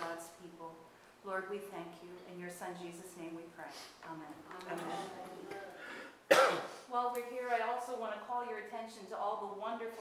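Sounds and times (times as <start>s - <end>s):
loud cough: 6.3s - 6.8s.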